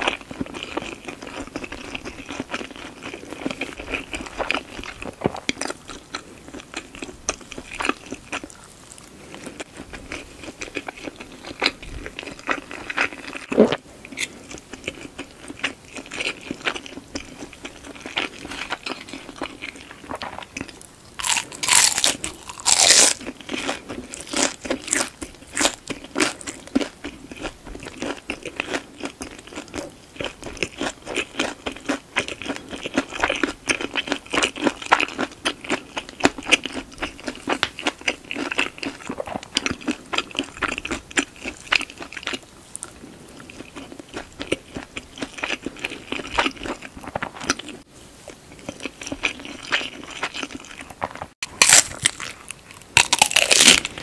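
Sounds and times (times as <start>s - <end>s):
crunchy bites: 9.8s - 42.4s, 49.0s - 54.0s.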